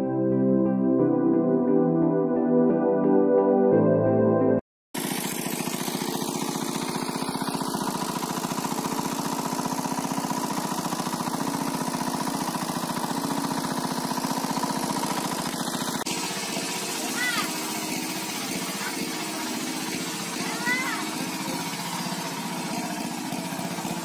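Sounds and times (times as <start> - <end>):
small pump engine running: 5.0 - 24.0.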